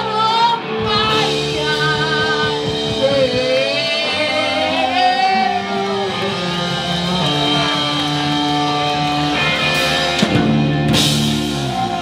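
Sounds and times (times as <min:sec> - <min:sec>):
electric guitar sustained notes: 0:00.0 - 0:12.0
live rock band: 0:00.0 - 0:12.0.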